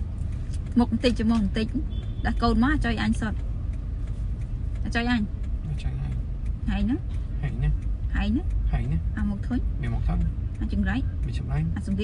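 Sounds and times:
car interior rumble: 0.0 - 12.0
woman speaking: 0.7 - 3.4, 4.8 - 5.3, 6.6 - 7.0, 8.1 - 9.7, 10.6 - 11.1, 11.7 - 12.0.

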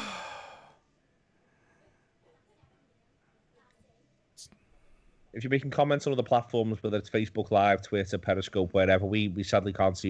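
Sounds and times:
man sighing: 0.0 - 0.8.

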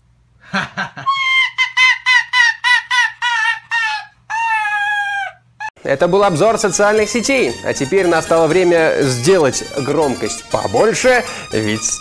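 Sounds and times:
person laughing: 0.4 - 5.4
pet high-pitched laugh-like calls: 1.0 - 5.8.

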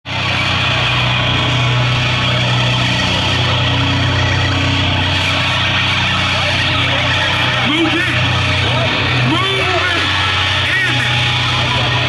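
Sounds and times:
metal band playing live: 0.1 - 12.0.

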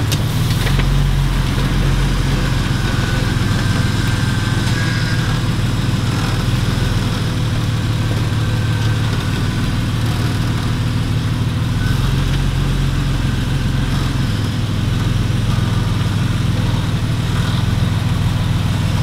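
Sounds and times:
car engine at low revs: 0.0 - 19.0.

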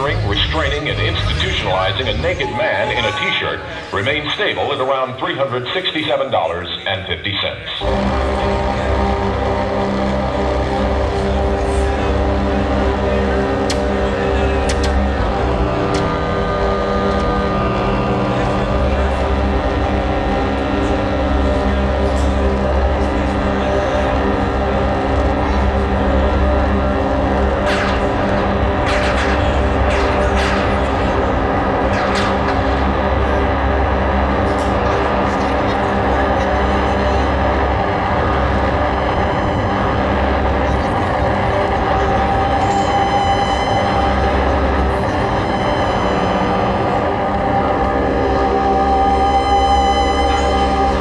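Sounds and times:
electronic noise music: 0.0 - 51.0
heavy low rumble: 0.0 - 51.0
synthesizer drone: 0.0 - 51.0
higher held tone: 7.8 - 51.0.

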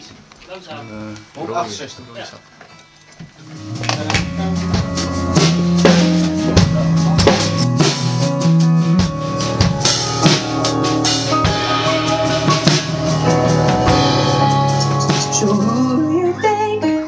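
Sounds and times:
drum kit: 3.3 - 17.0
bass: 3.4 - 17.0
keyboard chords: 3.4 - 17.0.

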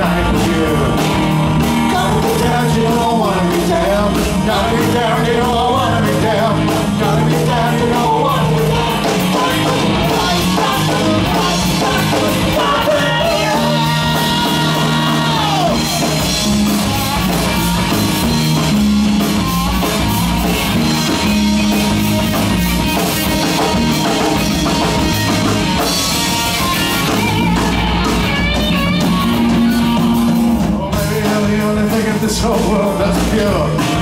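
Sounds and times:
bass guitar: 0.0 - 34.0
drum kit: 0.0 - 34.0
electric guitar lead lines: 0.0 - 34.0.

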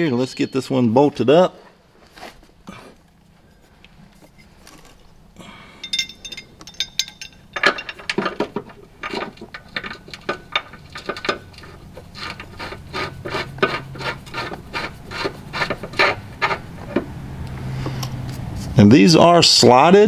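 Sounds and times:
metal bracket scraping and clicking: 5.8 - 17.1.

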